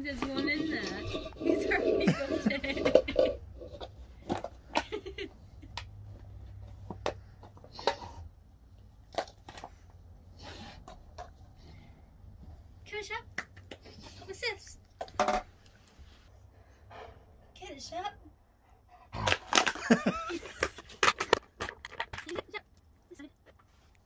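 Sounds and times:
plastic cups clicking and knocking: 0.1s - 5.0s, 6.8s - 8.2s, 19.3s - 22.8s
person laughing: 2.0s - 3.4s, 19.6s - 20.8s.

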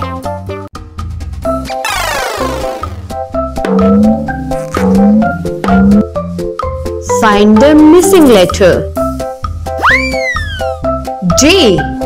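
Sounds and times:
cheerful children's music: 1.5s - 12.0s
cartoon boing sound effect: 1.7s - 3.1s, 3.7s - 6.1s.

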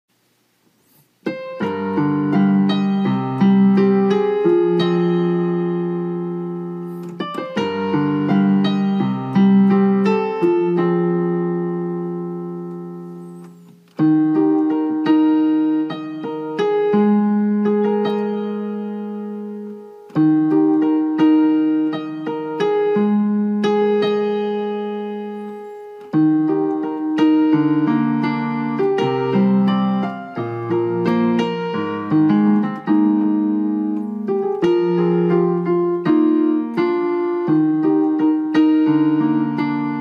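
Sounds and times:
digital piano ballad: 0.6s - 40.0s.

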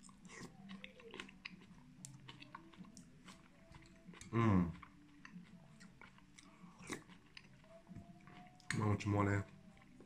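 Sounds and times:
chewing soup: 0.0s - 10.0s.

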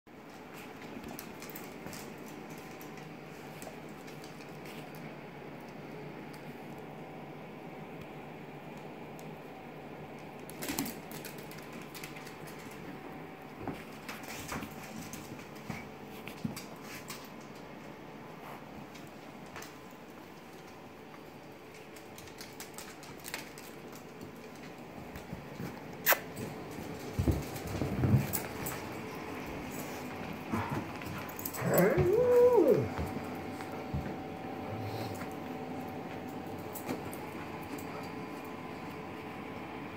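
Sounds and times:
dogs scuffling: 0.2s - 5.1s, 10.5s - 38.8s
dog claws clicking on wood floor: 0.5s - 5.0s, 10.4s - 13.0s, 21.6s - 25.8s.

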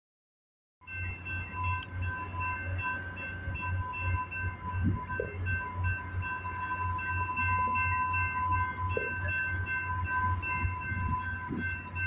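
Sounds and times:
crossing warning bell ringing: 0.8s - 12.0s
pulsing low hum: 1.2s - 12.0s.

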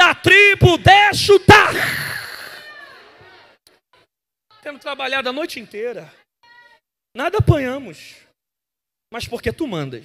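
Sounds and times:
man shouting into microphone: 0.0s - 2.6s.

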